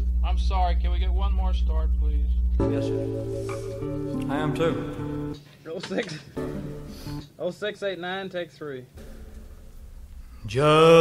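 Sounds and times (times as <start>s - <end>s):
indistinct studio talk: 0.2s - 11.0s
band music with guitar chord: 2.6s - 5.4s, 6.4s - 7.2s.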